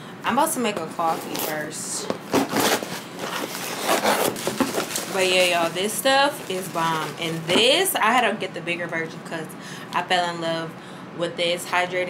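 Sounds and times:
fabric rustling against microphone: 2.3 - 7.6.

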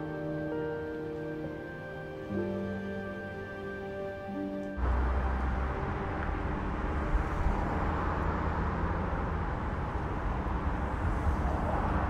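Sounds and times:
car engine rumble: 4.6 - 12.0.

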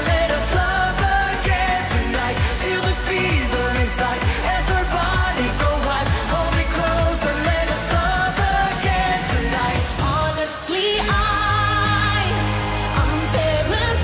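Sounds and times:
upbeat pop song: 0.0 - 14.0.

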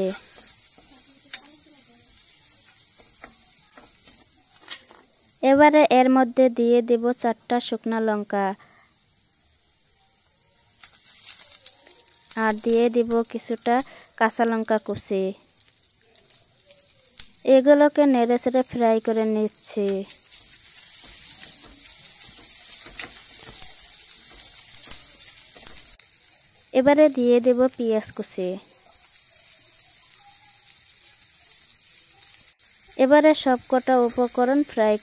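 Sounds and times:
person speaking: 0.0 - 1.6, 11.8 - 15.4, 17.4 - 20.1
oil sizzling in frying pan: 0.0 - 35.0.

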